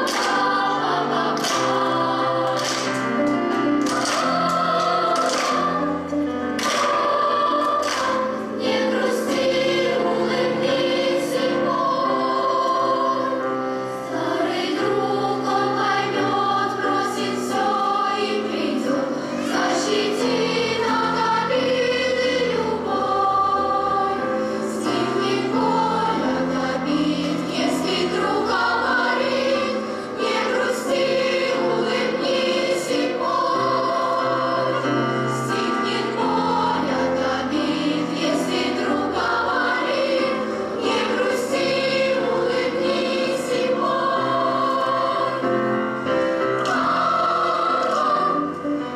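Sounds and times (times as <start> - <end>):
girls' choir singing: 0.0 - 48.9
grand piano accompaniment: 0.0 - 48.9.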